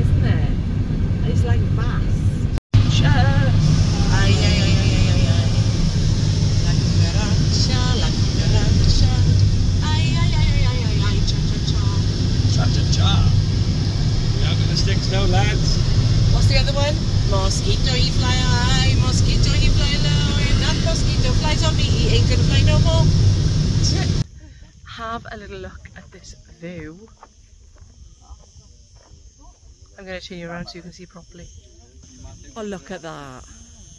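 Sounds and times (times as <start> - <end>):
car road and engine rumble: 0.0 - 33.9
quiet outdoor sound: 0.0 - 33.9
people talking indistinctly: 1.2 - 23.2, 28.1 - 33.5.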